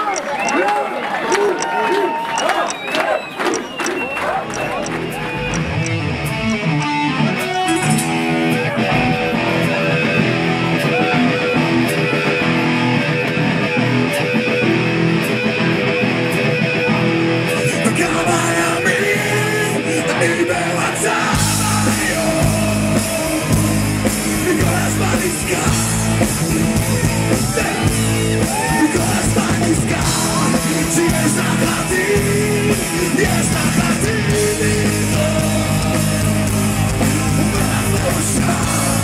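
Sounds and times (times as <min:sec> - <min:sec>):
crowd shouting and cheering: 0:00.0 - 0:39.0
live rock band: 0:03.4 - 0:39.0.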